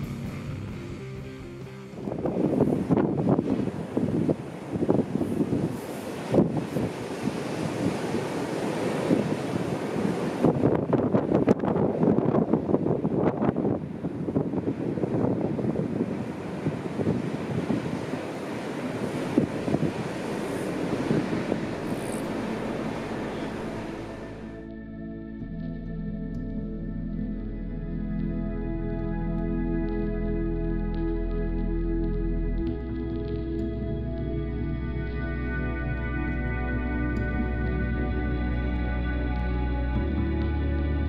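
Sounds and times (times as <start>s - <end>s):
wind: 0.0s - 41.0s
waves breaking and rushing: 1.7s - 24.6s.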